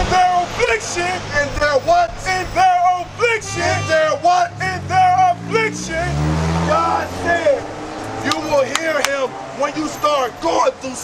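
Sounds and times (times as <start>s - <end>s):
car engine rumble passing by: 0.0s - 11.0s
man talking: 0.0s - 11.0s.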